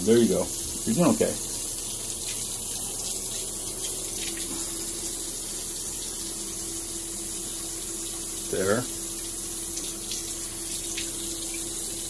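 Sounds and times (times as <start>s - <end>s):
tap water pouring into basin: 0.0s - 12.0s.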